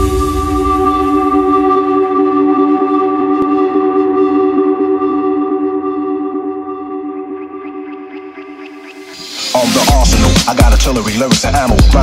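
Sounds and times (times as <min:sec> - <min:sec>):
held synth chord: 0:00.0 - 0:10.4.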